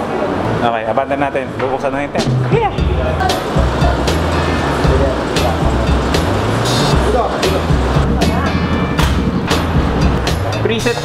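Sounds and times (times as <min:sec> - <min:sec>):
music with beat and bass: 0:02.2 - 0:11.0.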